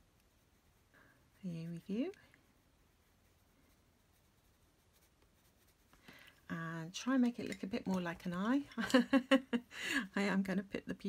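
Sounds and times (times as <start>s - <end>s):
pencil scratching on paper: 3.0s - 6.0s.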